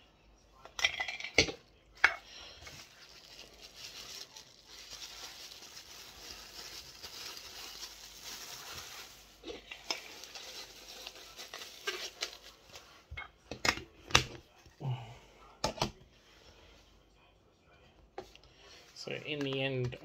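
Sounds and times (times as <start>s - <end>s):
bubble wrap crinkling: 2.4s - 13.0s.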